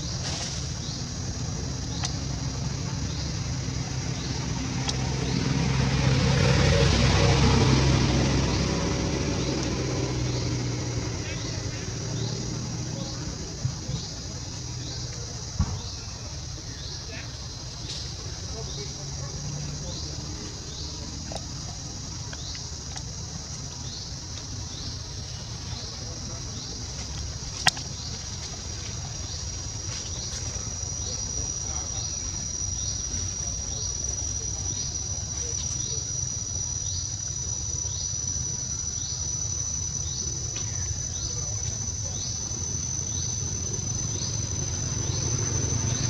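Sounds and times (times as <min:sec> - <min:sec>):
shrill insect chorus: 0:00.0 - 0:46.0
short rising insect chirp: 0:29.0 - 0:46.0.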